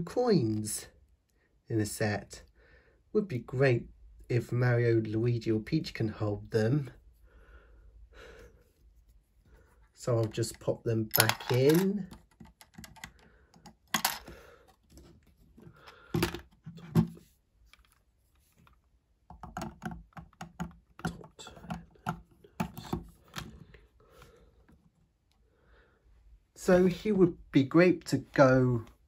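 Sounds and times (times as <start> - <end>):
plastic pieces clicking: 11.1 - 14.3.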